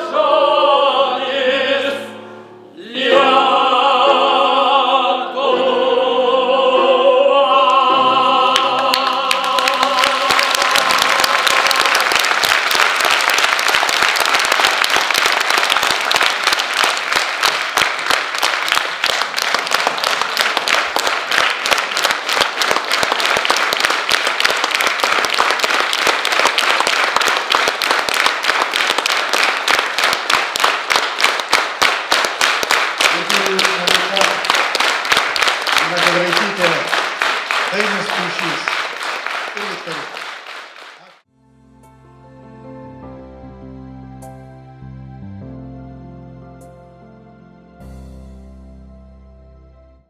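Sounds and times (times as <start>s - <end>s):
operatic singing: 0.0s - 12.6s, 27.0s - 40.3s
large audience applauding: 8.5s - 41.2s.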